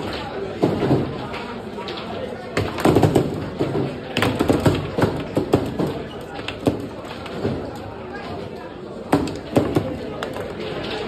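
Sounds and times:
people chattering: 0.0 - 11.0
table football knocks and clacks: 2.5 - 7.9, 9.0 - 10.6.

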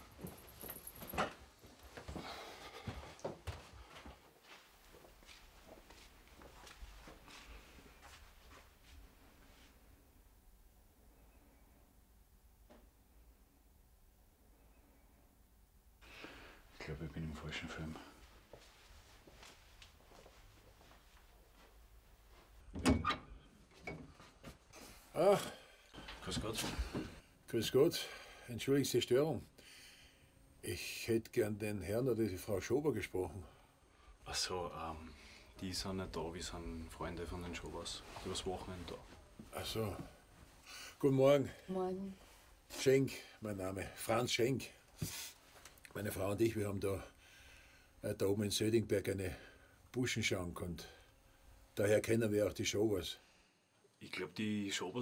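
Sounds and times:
footsteps: 0.0 - 9.7, 18.2 - 22.6
clothes and bedding rustling: 0.0 - 10.0, 17.4 - 25.1, 26.0 - 27.2, 35.6 - 44.2.

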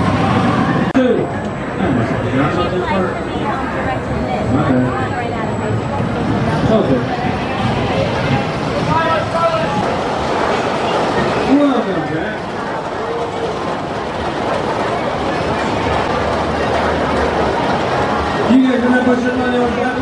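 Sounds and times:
people's voices: 0.0 - 20.0
roller coaster rumbling on track: 0.0 - 20.0.

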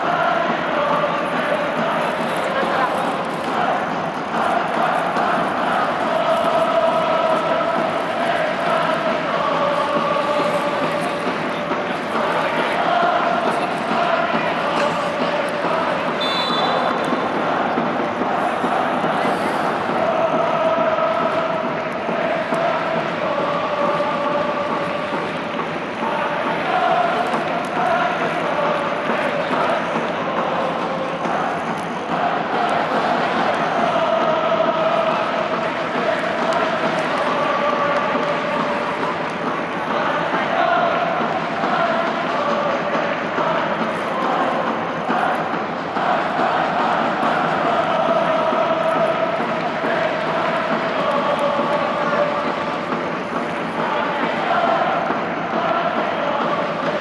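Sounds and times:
football crowd chanting: 0.0 - 57.0.

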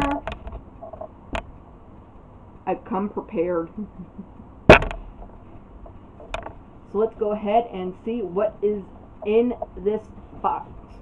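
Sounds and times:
sharp knock: 4.7 - 5.3.

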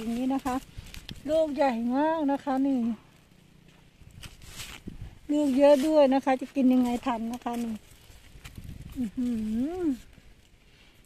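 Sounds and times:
faint low rumble: 0.0 - 11.0
woman humming: 8.9 - 10.2.

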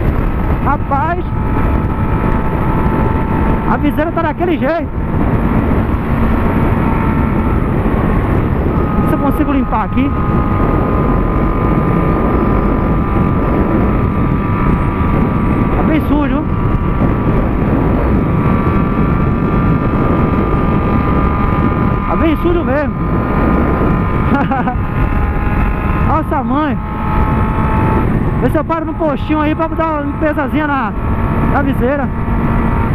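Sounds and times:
motorcycle engine cruising: 0.0 - 32.9
wind noise on microphone: 0.0 - 32.9.

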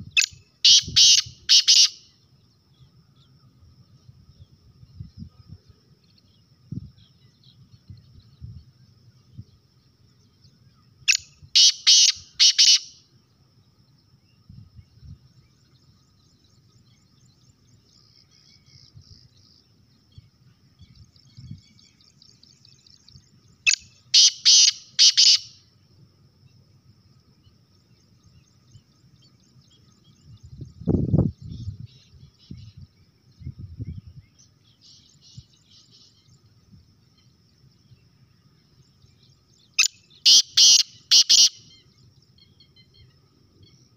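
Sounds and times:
faint distant bird chirps: 0.0 - 43.9
francolin harsh call: 0.1 - 2.2, 11.1 - 13.1, 23.7 - 25.7, 39.7 - 42.0.

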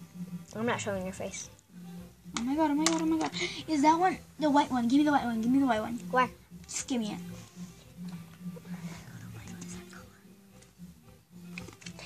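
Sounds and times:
whispered voices: 8.5 - 10.4.

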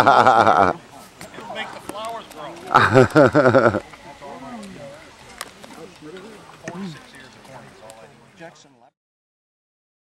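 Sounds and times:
faint voices talking: 0.0 - 9.0.

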